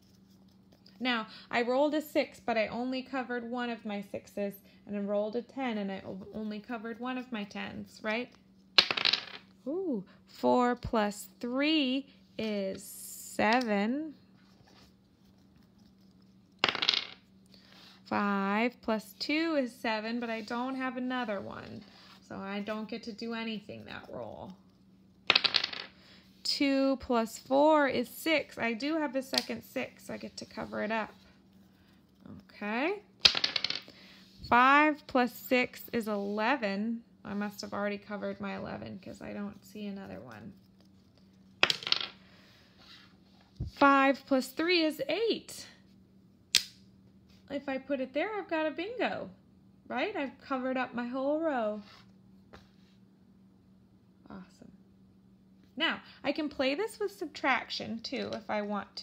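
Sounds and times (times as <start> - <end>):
dice clattering on a table: 8.8 - 9.5, 16.6 - 17.2, 25.3 - 26.0, 33.2 - 33.9, 41.6 - 42.2.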